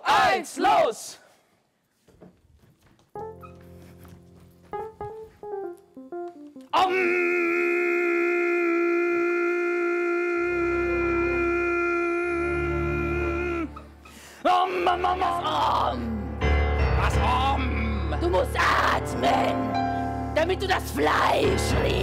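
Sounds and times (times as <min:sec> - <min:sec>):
digital piano notes: 0:03.1 - 0:06.8.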